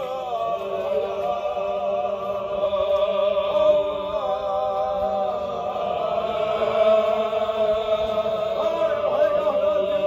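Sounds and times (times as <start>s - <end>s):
men chanting together: 0.0s - 10.0s.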